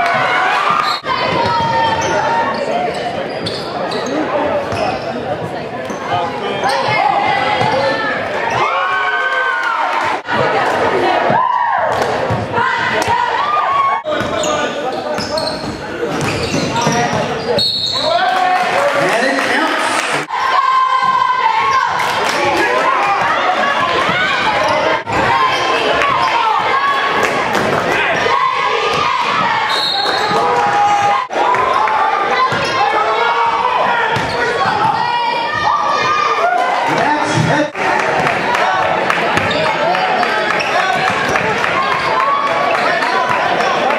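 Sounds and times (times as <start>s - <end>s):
crowd noise: 0.0s - 43.9s.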